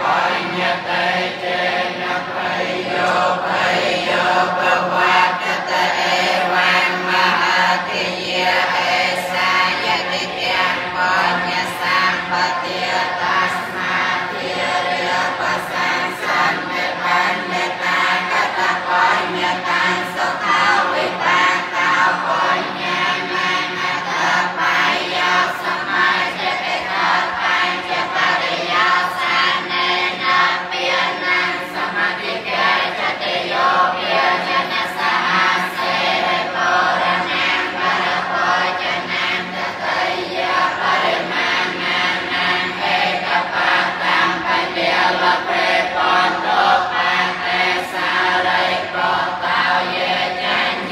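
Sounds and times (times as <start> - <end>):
group of voices chanting: 0.0 - 50.9.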